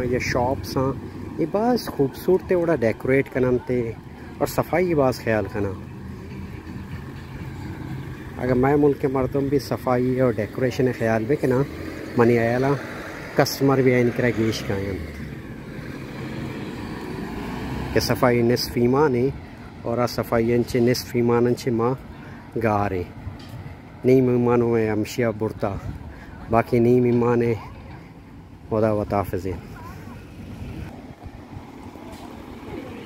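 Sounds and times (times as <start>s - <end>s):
distant voices: 0.0s - 33.0s
low street background rumble: 0.0s - 33.0s.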